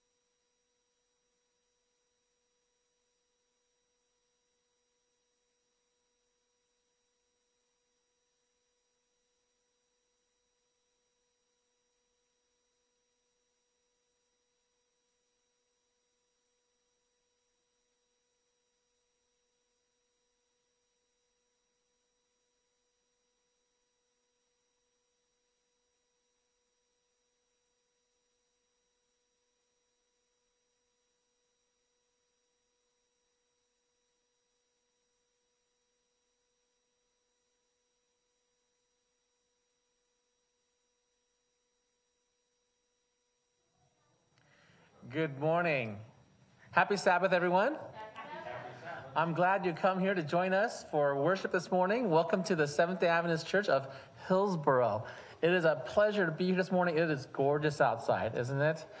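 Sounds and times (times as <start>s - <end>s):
faint steady tones: 0.0s - 59.0s
low hiss: 43.6s - 59.0s.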